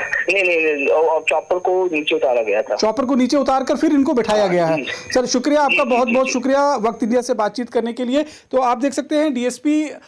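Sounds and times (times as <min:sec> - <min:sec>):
person talking radio-like: 0:04.3 - 0:06.5.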